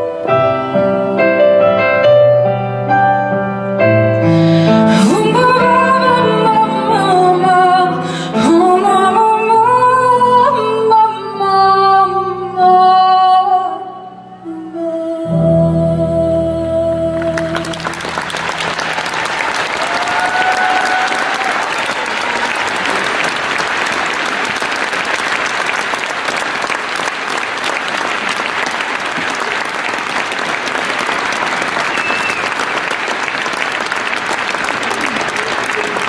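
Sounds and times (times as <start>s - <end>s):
concert audience applauding: 17.2s - 36.0s.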